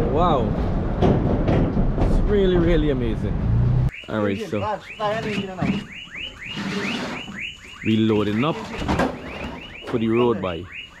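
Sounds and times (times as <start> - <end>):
car alarm siren warbling: 3.9 - 11.0.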